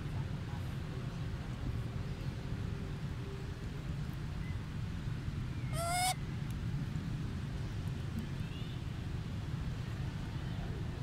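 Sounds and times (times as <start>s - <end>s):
macaque coo call: 5.8s - 6.2s.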